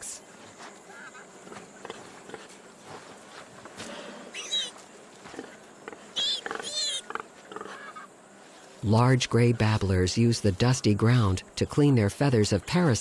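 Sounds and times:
animals squealing: 4.3s - 8.2s.

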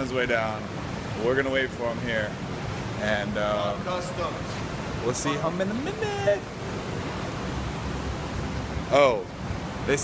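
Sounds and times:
steady rushing noise with low rumble: 0.0s - 10.0s.

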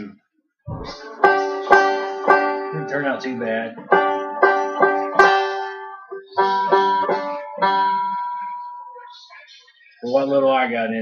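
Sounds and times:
banjo chords strummed: 0.7s - 9.2s.

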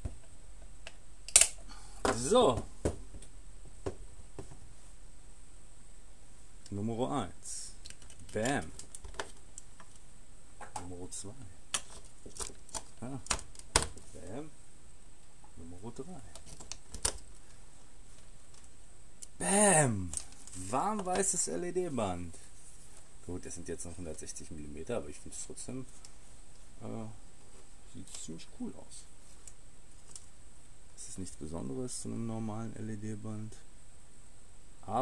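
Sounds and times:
low steady background hum: 0.0s - 35.0s
battery clicking into holder: 0.9s - 1.6s.

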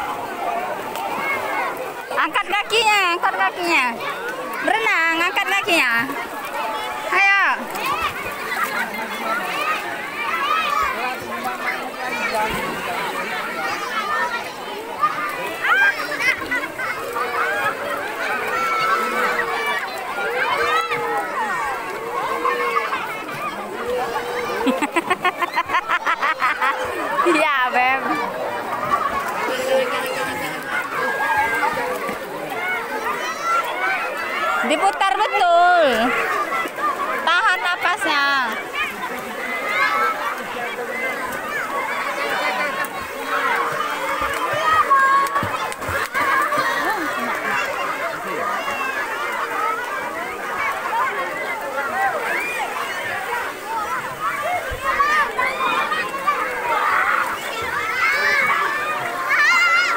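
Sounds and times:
crowd chatter: 0.0s - 59.9s
water splashing: 0.0s - 59.9s.

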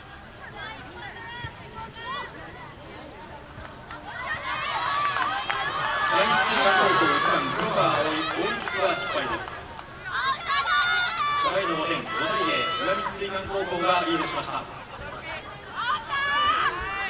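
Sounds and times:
young women shouting: 10.0s - 14.2s, 15.4s - 17.0s.

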